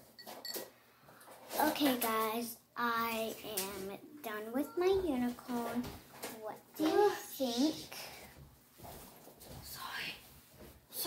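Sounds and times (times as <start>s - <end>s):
girl's voice holding a pitch: 4.4s - 5.4s.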